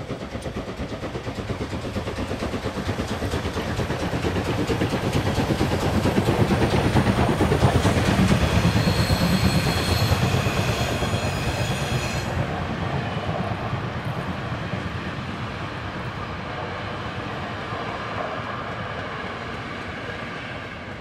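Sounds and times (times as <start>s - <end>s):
steam locomotive chuffing: 0.0s - 21.0s
high wheel squeal: 7.7s - 12.4s.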